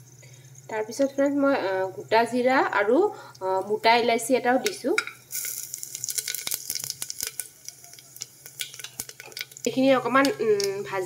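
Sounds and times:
spices sizzling in hot oil: 0:00.0 - 0:11.0.

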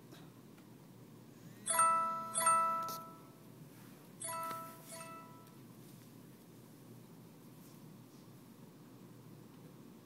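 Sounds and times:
bell-like chime ringing: 0:01.7 - 0:03.3, 0:04.2 - 0:05.6.

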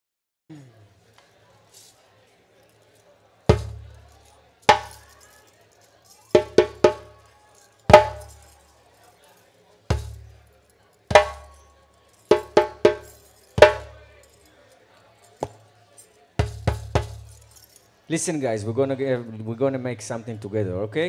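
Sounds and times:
djembe strikes: 0:03.5 - 0:03.8, 0:04.7 - 0:04.9, 0:06.4 - 0:07.1, 0:07.9 - 0:08.3, 0:11.1 - 0:11.6, 0:12.3 - 0:14.0, 0:16.4 - 0:17.2.

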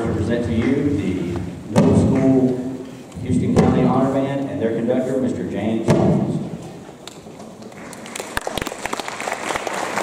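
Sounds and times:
man speaking into a microphone: 0:00.0 - 0:06.6.

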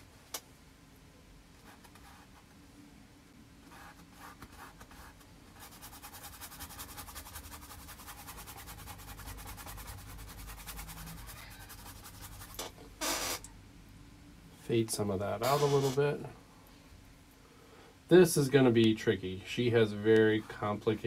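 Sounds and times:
paintbrush scrubbing on canvas: 0:03.8 - 0:13.4, 0:15.4 - 0:16.0.

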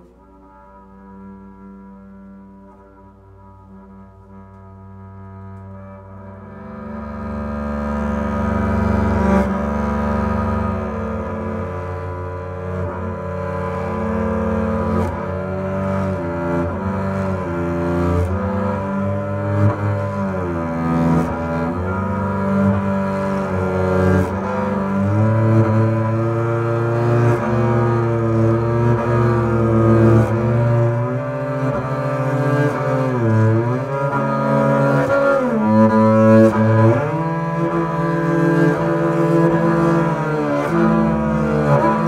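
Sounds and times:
bowed double bass: 0:00.0 - 0:42.0.

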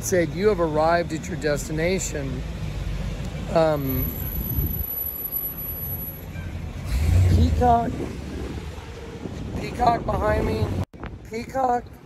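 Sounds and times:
street traffic rumble: 0:00.0 - 0:12.0.

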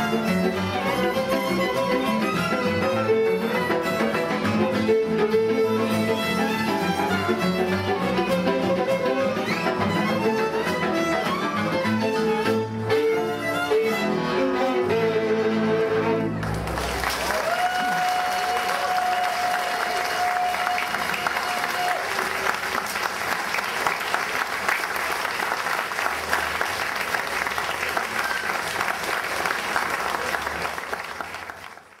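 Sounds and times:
bowed fiddle music: 0:00.0 - 0:16.7
audience applause: 0:16.4 - 0:32.0.

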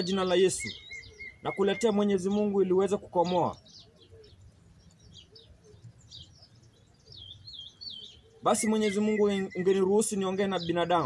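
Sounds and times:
warbling bird call: 0:00.0 - 0:04.5, 0:05.2 - 0:11.0
bird chirps: 0:00.0 - 0:11.0.

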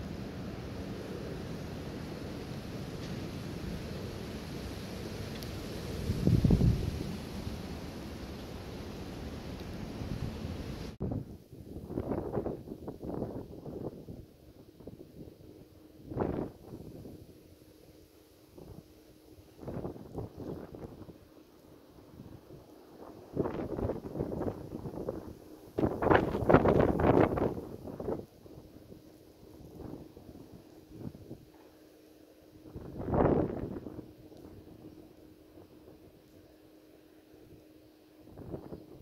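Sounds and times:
faint steady hum: 0:00.0 - 0:39.0
wind buffeting microphone: 0:05.4 - 0:07.8, 0:09.9 - 0:17.4, 0:18.6 - 0:21.2, 0:22.0 - 0:31.6, 0:32.6 - 0:36.2, 0:38.2 - 0:39.0.

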